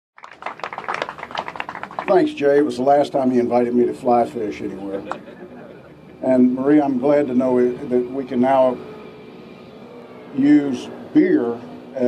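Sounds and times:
hand clapping applause: 0.2s - 2.3s.

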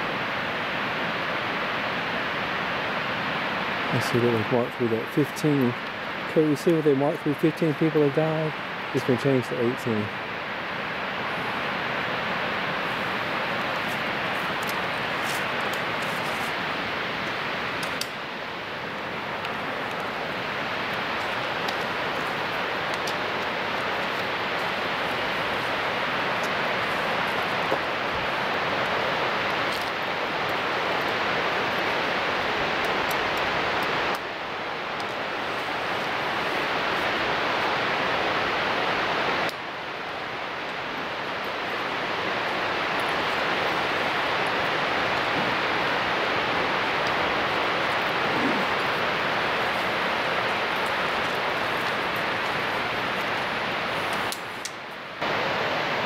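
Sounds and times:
waterfall rushing: 0.0s - 56.0s.

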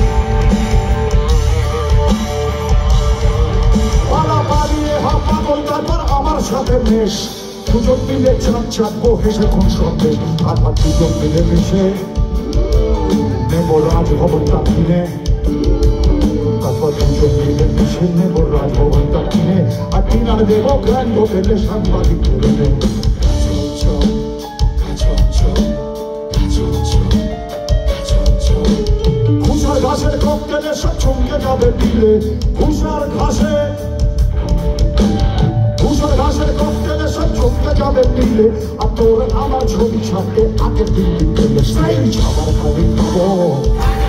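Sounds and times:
person singing: 0.0s - 34.1s, 35.7s - 44.0s
bass: 0.0s - 44.0s
bending lead melody: 0.0s - 44.0s
drum kit: 0.0s - 44.0s
electric guitar: 0.0s - 44.0s
keyboards: 0.0s - 44.0s
live rock band playing: 0.0s - 44.0s.

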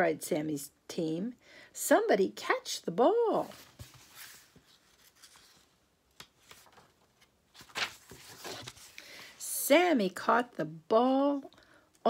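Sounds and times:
paper page turning: 3.4s - 9.1s.

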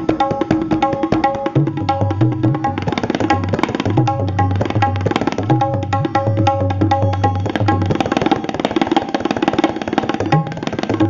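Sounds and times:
fast tabla strokes: 0.0s - 11.0s
looping melody: 1.0s - 8.9s.

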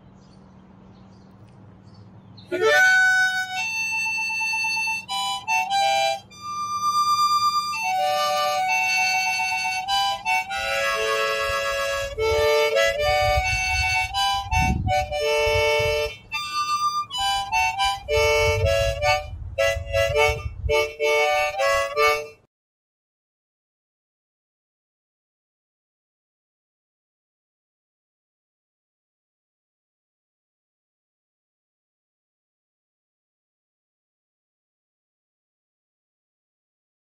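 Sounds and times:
harmonica notes wavering: 2.5s - 22.5s.

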